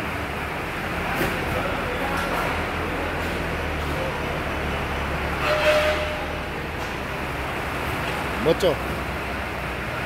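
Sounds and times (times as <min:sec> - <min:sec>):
conveyor mechanical hum: 0:00.0 - 0:10.0
short squeal: 0:05.4 - 0:06.4.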